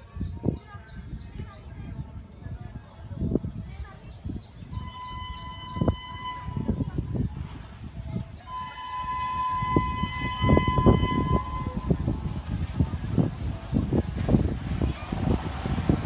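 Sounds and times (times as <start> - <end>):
electric locomotive horn: 4.8 - 6.9, 8.5 - 12.1.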